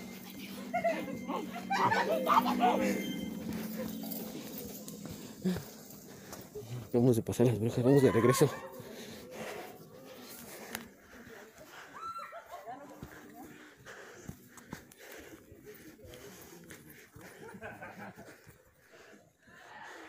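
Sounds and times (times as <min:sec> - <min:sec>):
distant voices and shouts: 0:07.7 - 0:14.2.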